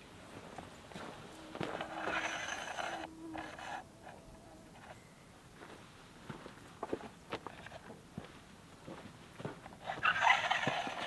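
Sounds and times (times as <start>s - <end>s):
fabric scraping rustle: 1.0s - 3.8s.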